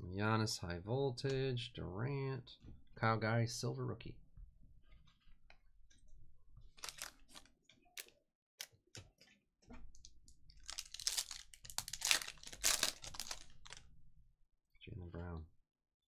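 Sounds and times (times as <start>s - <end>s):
wrapper crinkling and tearing: 6.7s - 8.1s, 10.5s - 13.9s.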